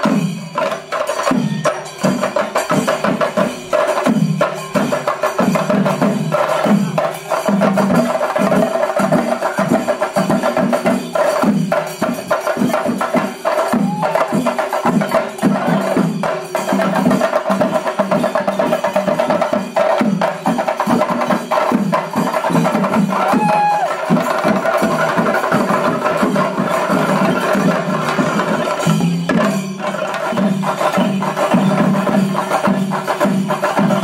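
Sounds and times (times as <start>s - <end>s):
drum ensemble playing fast: 0.0s - 34.0s.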